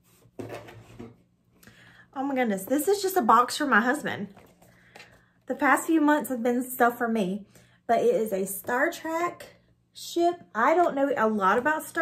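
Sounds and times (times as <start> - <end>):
items rustling and knocking in box: 0.0 - 1.3.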